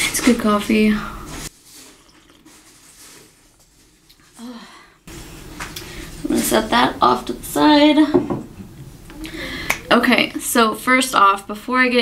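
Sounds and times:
sipping and swallowing coffee: 1.8 - 2.6.

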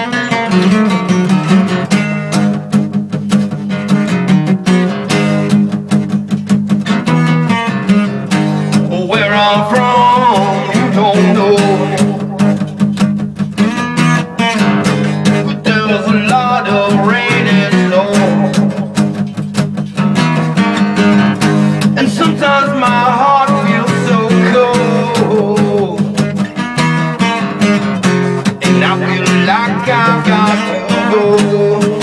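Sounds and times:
acoustic guitar strumming: 0.0 - 32.0
bending melody line: 0.0 - 32.0.

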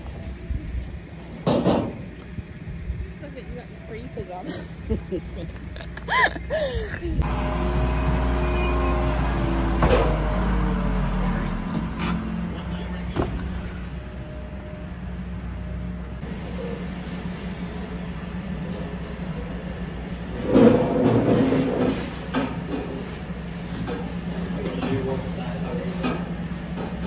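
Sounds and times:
loud burst of noise: 7.2 - 11.8
tractor engine idling: 7.2 - 20.2.

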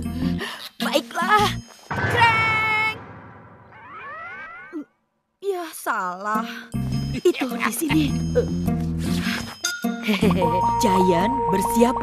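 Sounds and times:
cartoon rising tone: 3.5 - 4.9.

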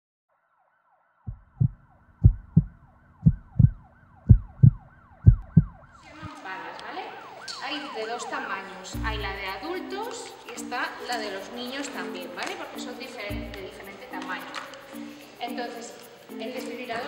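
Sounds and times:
falling siren wail: 0.5 - 9.0
heartbeat thumps: 1.3 - 6.4
music: 8.3 - 17.0.

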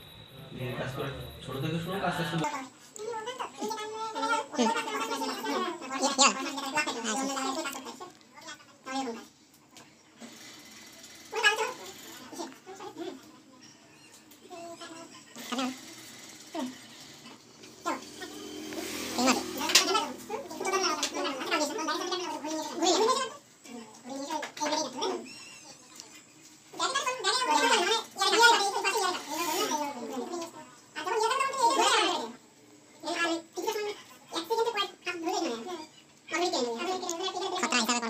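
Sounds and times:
people talking: 0.0 - 8.1, 19.1 - 26.2, 33.0 - 38.0.

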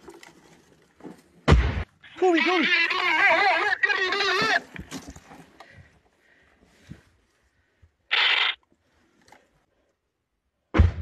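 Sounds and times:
loud quavering cry: 2.1 - 4.6, 8.1 - 8.6.

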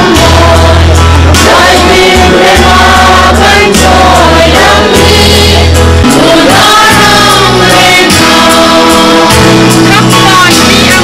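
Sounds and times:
group singing in chorus: 0.0 - 11.0
low sustained bass notes: 0.0 - 11.0.

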